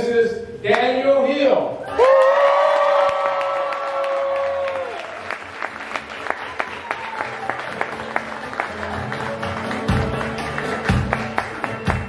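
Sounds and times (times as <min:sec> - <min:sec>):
high cheer: 0:01.8 - 0:09.3
guests applauding: 0:01.9 - 0:12.0
music: 0:05.7 - 0:12.0.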